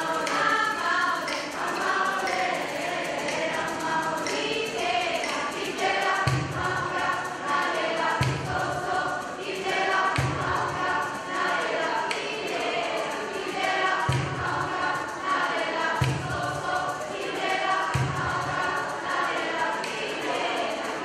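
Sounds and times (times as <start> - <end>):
choir singing held notes: 0.0 - 21.0.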